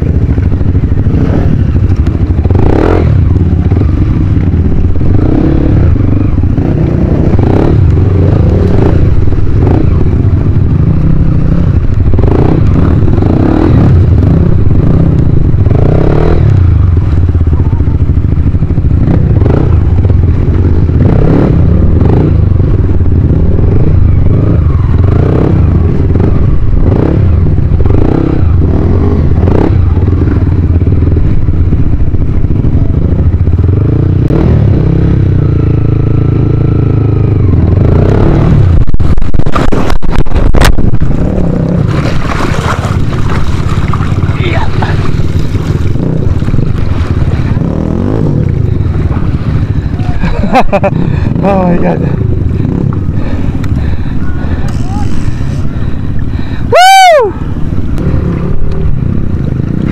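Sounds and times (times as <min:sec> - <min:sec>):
dirt bike engine running: 0:00.0 - 0:59.9
water splashing: 0:41.8 - 0:47.2.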